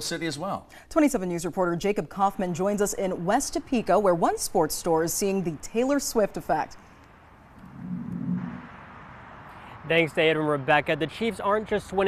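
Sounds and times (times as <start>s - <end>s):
vehicle passing with low hum: 5.0s - 11.9s.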